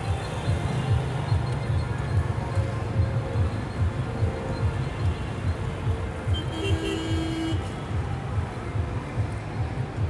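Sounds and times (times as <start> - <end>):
traffic rumble: 0.0 - 10.0
vehicle horn: 6.3 - 7.8.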